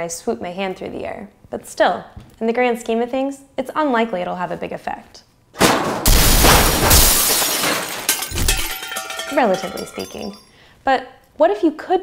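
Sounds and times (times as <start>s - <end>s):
thud: 5.6s - 8.7s
glass breaking: 5.6s - 10.5s.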